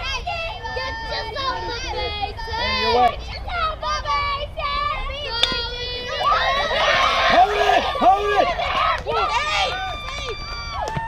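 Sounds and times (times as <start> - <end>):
girls chanting a cheer: 0.0 - 10.0.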